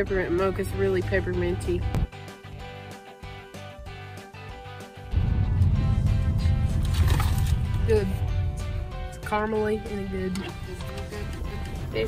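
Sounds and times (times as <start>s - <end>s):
woman speaking: 0.0s - 1.9s, 7.8s - 8.3s, 9.2s - 12.0s
background music: 0.0s - 12.0s
loud low rumble: 5.1s - 12.0s.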